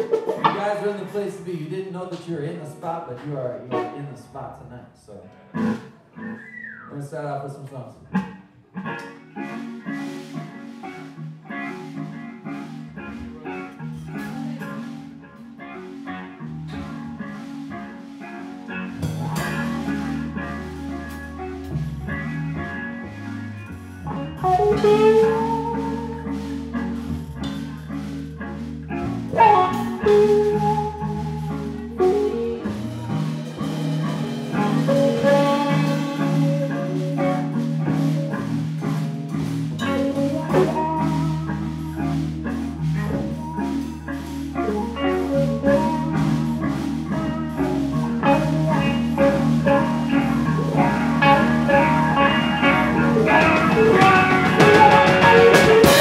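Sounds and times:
drum kit: 0.0s - 3.9s, 8.2s - 15.4s, 16.5s - 56.0s
electric bass: 0.0s - 56.0s
electric guitars: 0.0s - 56.0s.

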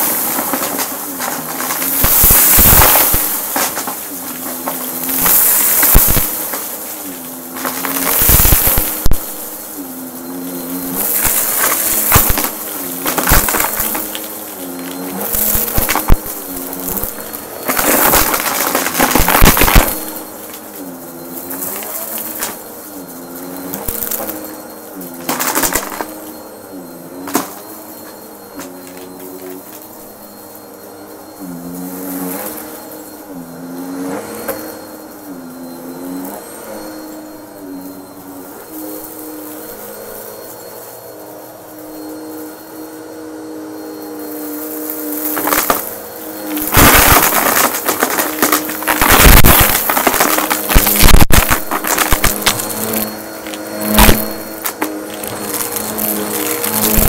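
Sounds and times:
debris crackling in vacuum: 0.0s - 57.0s
vacuum cleaner running: 0.0s - 57.0s.

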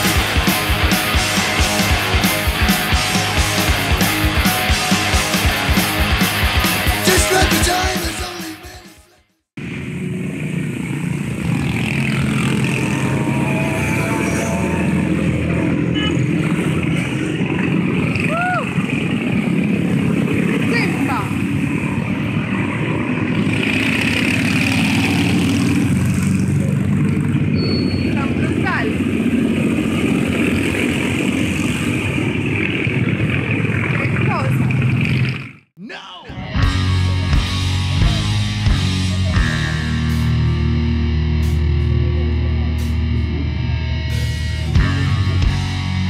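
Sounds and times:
people talking: 7.0s - 8.9s, 20.6s - 21.4s, 28.1s - 29.0s, 33.8s - 34.8s, 35.8s - 36.6s, 37.9s - 39.8s
motorcycles riding past: 9.6s - 35.6s.

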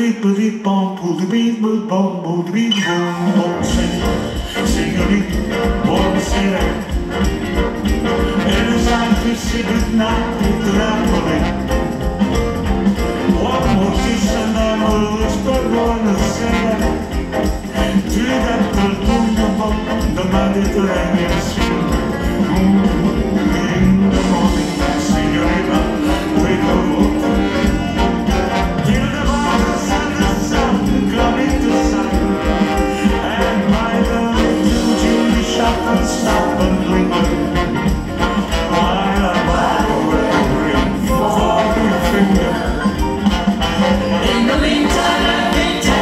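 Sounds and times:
man and woman singing duet: 0.0s - 46.0s
live band music: 2.6s - 46.0s
keyboard: 2.9s - 46.0s
drums: 3.1s - 46.0s
electric guitars: 3.1s - 46.0s.

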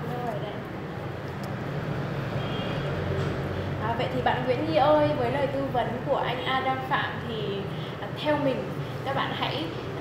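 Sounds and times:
low background rumble and hum: 0.0s - 10.0s.

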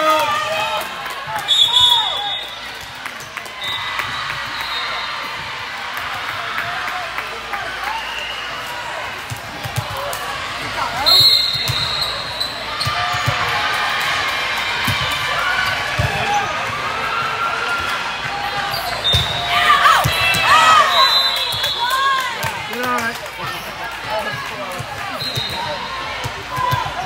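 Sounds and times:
crowd chatter: 0.0s - 27.0s
referee's whistle: 1.5s - 2.7s, 3.6s - 5.2s, 11.0s - 12.6s, 18.7s - 22.2s, 25.1s - 25.9s
sneakers squeaking on court: 11.3s - 13.3s.

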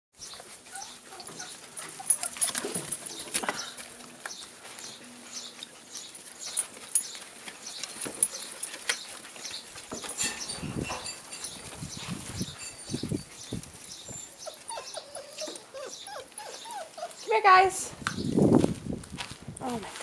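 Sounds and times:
puppies scuffling: 0.2s - 20.0s
puppy yelps and whimpers: 0.6s - 2.6s, 13.9s - 17.3s.

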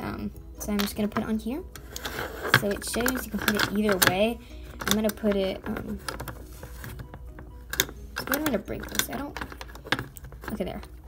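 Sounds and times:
plastic toy parts clicking: 1.8s - 6.4s, 7.1s - 10.6s.

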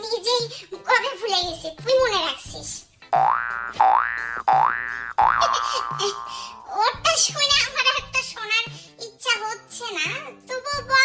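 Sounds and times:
cartoon boing sound effect: 3.2s - 6.7s.

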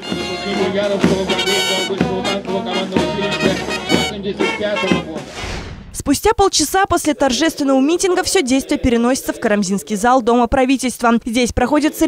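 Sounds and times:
brass band playing a march: 0.0s - 5.3s.

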